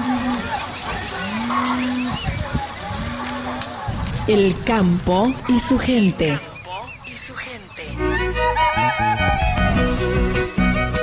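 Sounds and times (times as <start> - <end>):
cattle mooing: 0.0 - 2.2, 2.9 - 3.8.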